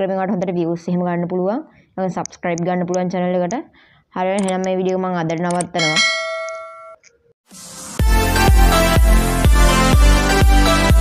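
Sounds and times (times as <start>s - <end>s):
notification bell ding: 5.8s - 7.0s.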